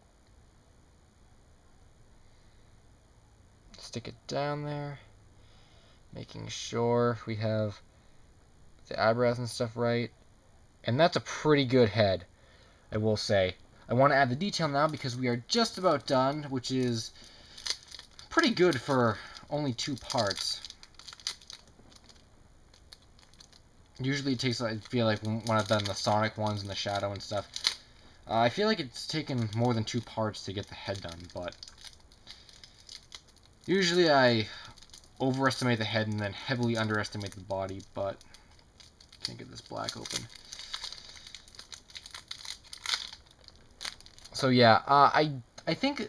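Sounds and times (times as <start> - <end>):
plastic wrapper crinkling: 14.0 - 44.6
modelling clay crackling clicks: 15.9 - 28.2, 30.6 - 34.0, 34.7 - 44.4.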